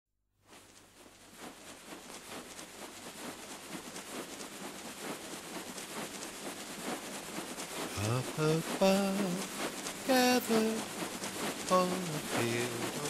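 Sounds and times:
soft crackling and pattering: 0.4s - 13.0s
voice: 7.9s - 9.5s, 10.1s - 10.8s, 11.7s - 13.0s.

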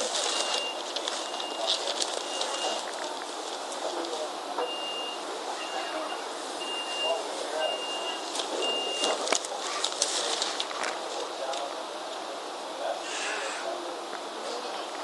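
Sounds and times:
background noise: 0.0s - 15.0s
high electronic beeps: 4.6s - 9.2s.

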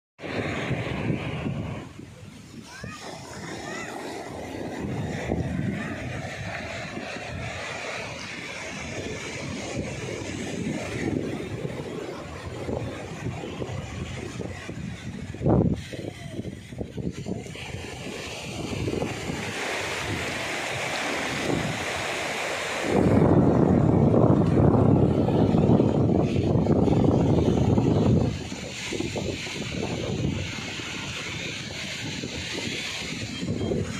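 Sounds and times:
surf washing up a beach: 0.2s - 33.9s
wind buffeting microphone: 0.2s - 33.9s.

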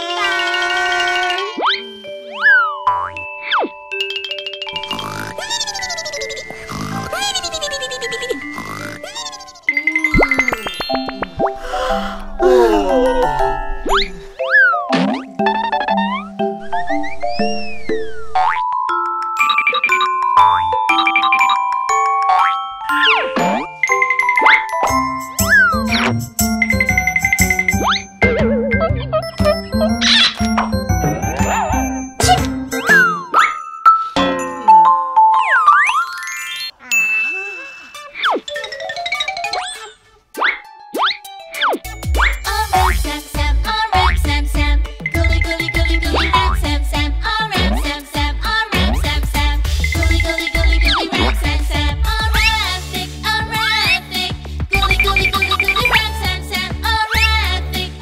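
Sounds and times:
playful children's music: 0.0s - 58.0s
plinking notes: 1.8s - 9.0s, 9.6s - 11.8s, 12.5s - 39.8s
cartoon boing sweeps: 4.8s - 11.6s
cartoon upward sweep: 4.8s - 18.6s, 27.7s - 33.6s
whistle-like tone: 16.6s - 18.3s, 54.8s - 56.0s.

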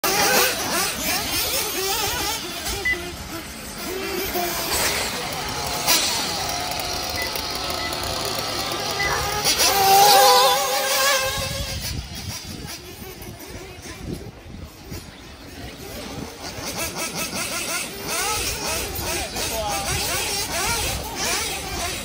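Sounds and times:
toy car motors whining: 0.0s - 22.0s
voices in background: 0.0s - 22.0s.

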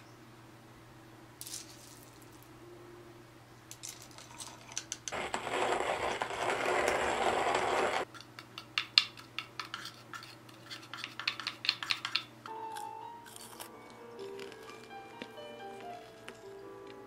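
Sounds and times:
coffee beans rattling into hopper: 3.8s - 8.1s.

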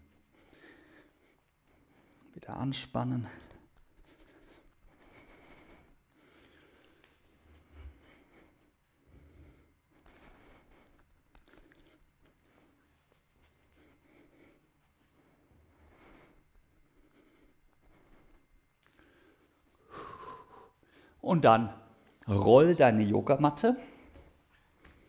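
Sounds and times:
soft rustles: 3.3s - 19.8s.

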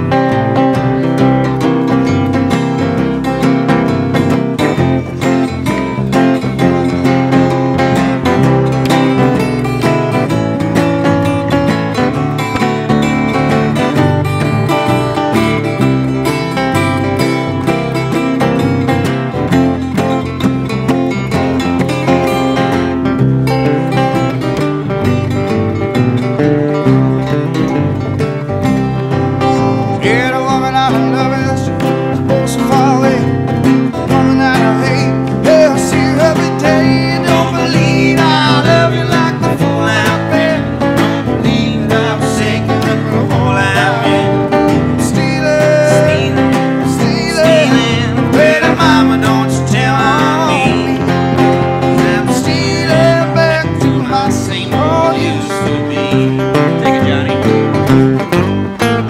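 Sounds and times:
acoustic guitars playing: 0.0s - 59.0s.

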